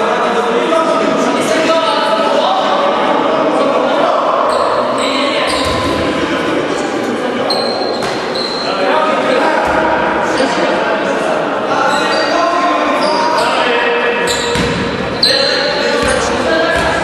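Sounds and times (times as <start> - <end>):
players' voices: 0.0 - 17.0
short high squeaks: 7.5 - 8.7
basketball bouncing on court floor: 14.4 - 15.0, 16.0 - 17.0.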